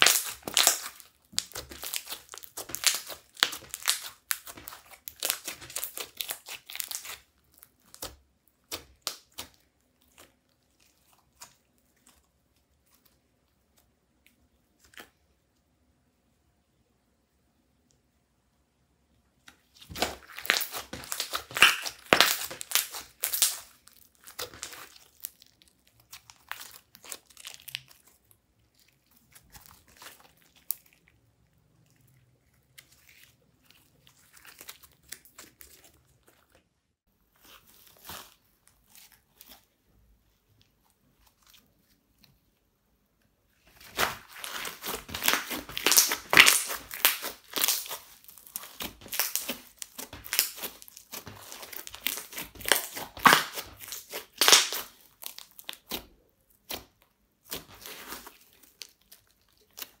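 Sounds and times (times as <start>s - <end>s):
slime crackling and popping: 0.0s - 12.2s, 19.8s - 36.6s, 43.7s - 60.0s.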